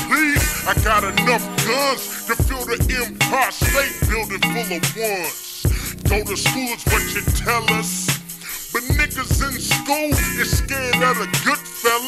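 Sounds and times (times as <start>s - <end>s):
heavy bass-drum beat: 0.0s - 12.0s
slowed-down rapping: 0.0s - 12.0s.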